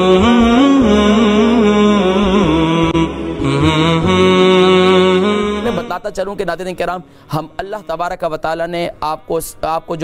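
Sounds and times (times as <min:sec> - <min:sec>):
vocal chant long notes: 0:00.0 - 0:06.1.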